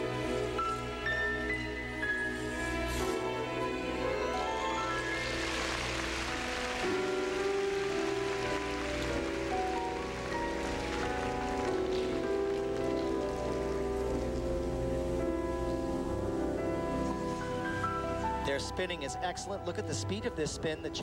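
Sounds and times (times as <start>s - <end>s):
skating program music: 0.0s - 21.0s
audience applause: 4.3s - 15.1s.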